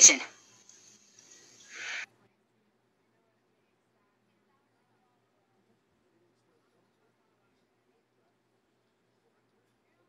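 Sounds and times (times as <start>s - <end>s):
woman's soft exhale: 1.7s - 2.0s.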